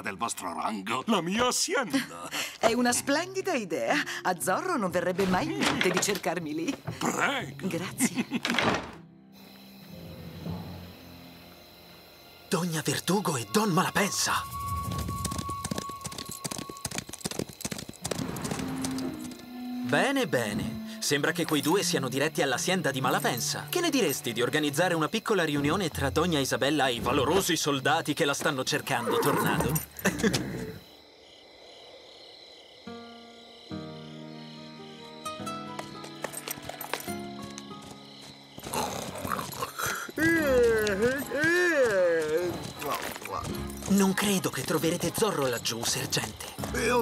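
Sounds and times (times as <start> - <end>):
horses galloping hooves clattering: 14.5 - 19.5, 35.7 - 47.0
cartoon background music: 18.2 - 27.6, 43.0 - 47.0
horse neighing: 28.9 - 30.9, 38.6 - 43.5.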